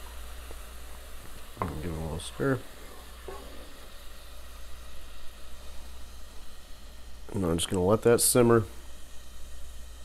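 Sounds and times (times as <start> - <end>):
liquid boiling in a saucepan: 0.0 - 10.0.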